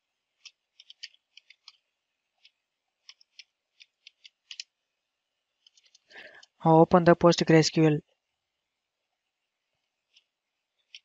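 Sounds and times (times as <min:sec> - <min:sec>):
keyboard keystrokes: 0:02.4 - 0:04.7.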